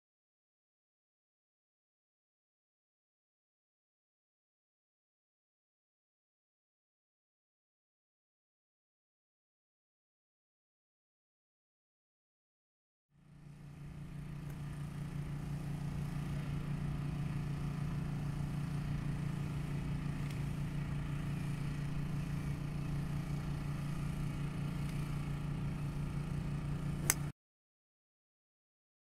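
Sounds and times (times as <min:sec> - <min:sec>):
low mechanical hum: 0:13.2 - 0:27.3
sharp click: 0:27.0 - 0:27.3.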